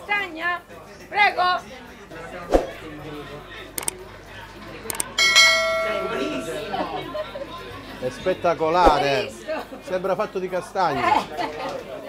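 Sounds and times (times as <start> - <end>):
bell-like metallic ring: 5.2 - 7.0.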